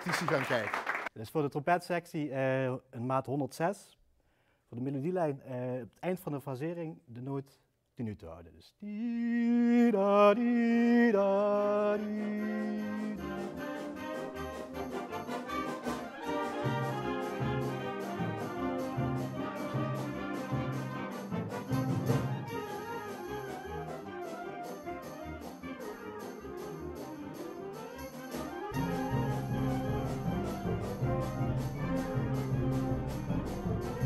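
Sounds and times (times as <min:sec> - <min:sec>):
wind band playing: 0:11.9 - 0:34.0.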